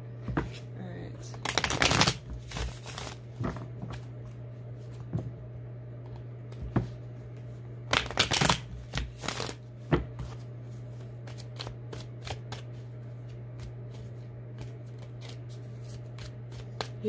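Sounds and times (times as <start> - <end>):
cards shuffling: 1.4 - 3.2, 7.9 - 9.6, 10.2 - 17.0.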